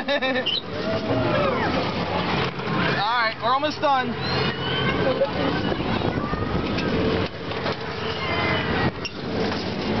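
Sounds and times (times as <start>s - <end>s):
carnival ride rushing: 0.0s - 10.0s.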